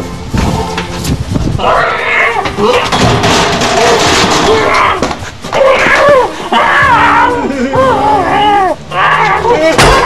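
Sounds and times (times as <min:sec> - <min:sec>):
broom hitting: 0:02.4 - 0:06.0
people yelling and screaming: 0:03.8 - 0:10.0.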